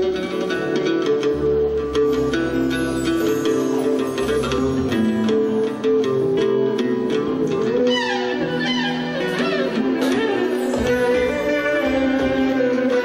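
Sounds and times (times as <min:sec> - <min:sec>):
plucked string ensemble music: 0:00.0 - 0:13.0.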